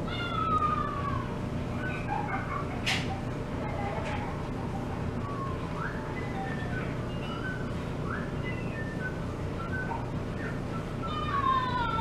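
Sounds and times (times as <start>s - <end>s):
cat meowing: 0.1s - 1.4s.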